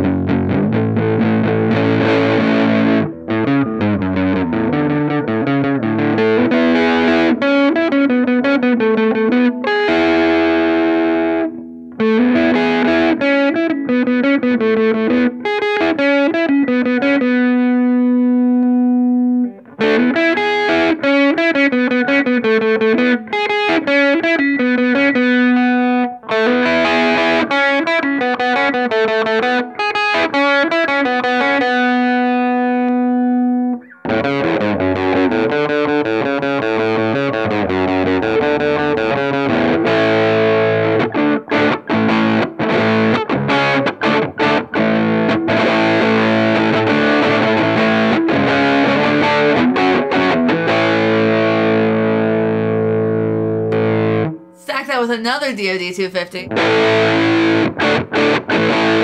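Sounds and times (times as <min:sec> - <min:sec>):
overdriven electric guitar: 0:00.0 - 0:54.7, 0:56.5 - 0:59.0.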